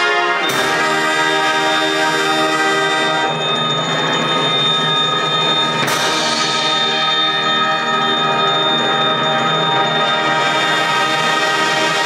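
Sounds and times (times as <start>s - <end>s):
concert band playing: 0.0s - 12.0s.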